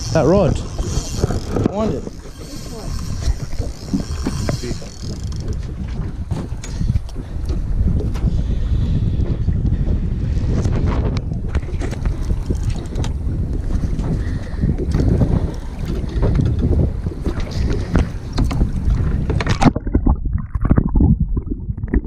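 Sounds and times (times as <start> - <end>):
water slapping: 0.0 - 8.1, 10.6 - 22.0
wind buffeting microphone: 0.0 - 22.0
underwater gurgling: 17.2 - 22.0.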